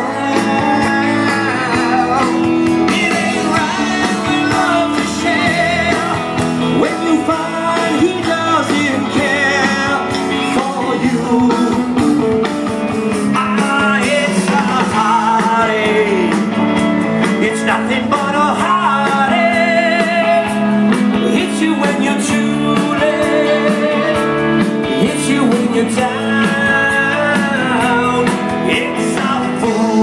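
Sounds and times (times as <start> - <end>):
person singing: 0.0 - 12.3, 13.1 - 30.0
electric guitar: 0.0 - 30.0
rock band playing: 0.0 - 30.0
steady drum beat: 0.0 - 30.0.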